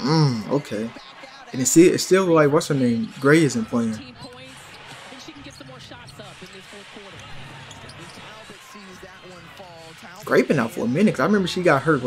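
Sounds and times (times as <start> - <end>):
commentator talking: 0.0 - 7.3, 7.9 - 12.0
arena crowd noise: 0.0 - 12.0.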